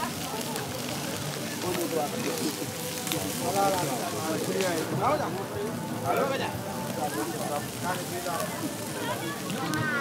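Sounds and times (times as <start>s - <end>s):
fish sizzling on a grill: 0.0s - 10.0s
people talking: 0.0s - 10.0s.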